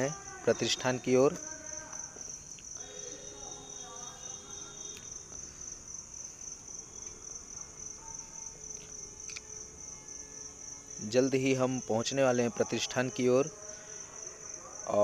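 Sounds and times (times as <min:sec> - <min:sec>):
faint street sounds: 0:00.0 - 0:15.0
insects buzzing: 0:00.0 - 0:15.0.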